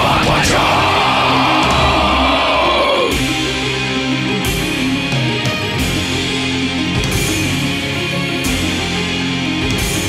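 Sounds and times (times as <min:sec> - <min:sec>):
long harsh scream: 0:00.0 - 0:03.2
distorted heavy metal backing: 0:00.0 - 0:10.0.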